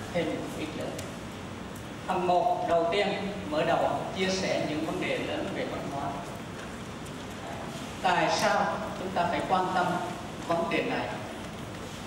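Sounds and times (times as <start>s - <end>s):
large hall background noise: 0.0s - 12.0s
man speaking: 2.1s - 6.3s.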